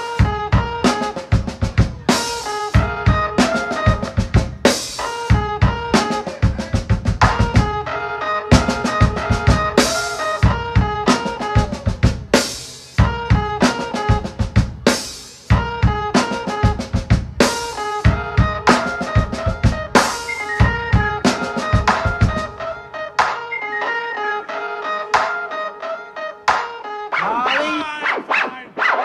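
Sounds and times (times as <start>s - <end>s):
jazz fusion band playing: 0.0s - 28.4s
electric keyboard chords: 0.0s - 29.0s.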